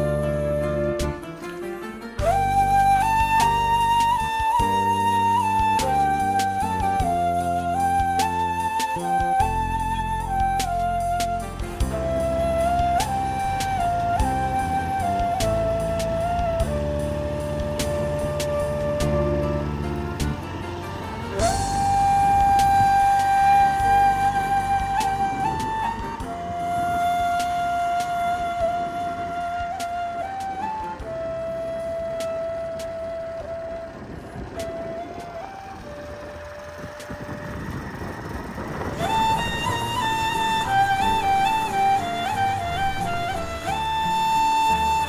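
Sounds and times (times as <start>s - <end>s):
flute-like long notes: 0.0s - 45.0s
low drone: 0.0s - 45.0s
steady rushing noise: 1.0s - 45.0s.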